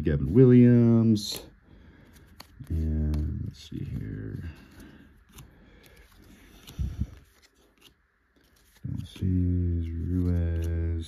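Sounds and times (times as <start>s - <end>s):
cards sliding and clicking: 1.2s - 11.0s.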